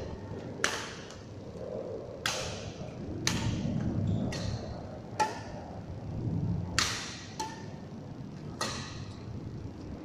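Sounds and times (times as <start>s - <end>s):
racket hitting shuttlecock: 0.6s - 1.2s, 2.2s - 5.6s, 6.8s - 7.8s, 8.6s - 9.2s.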